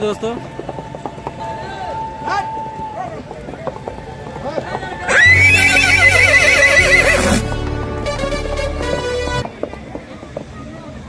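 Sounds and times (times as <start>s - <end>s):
hooves clip-clopping: 0.0s - 11.0s
horse whinnying: 5.1s - 7.4s
music: 5.1s - 9.5s.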